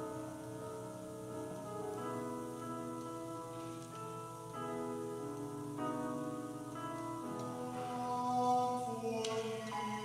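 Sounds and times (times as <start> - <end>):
man singing a hymn: 7.2 - 10.0.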